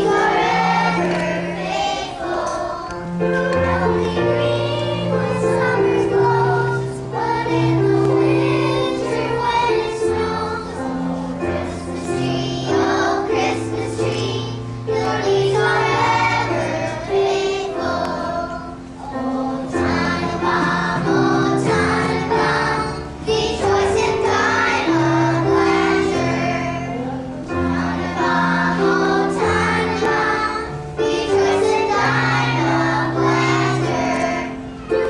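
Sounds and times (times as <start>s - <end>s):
children's choir singing: 0.0s - 35.0s
instrumental accompaniment: 0.0s - 35.0s.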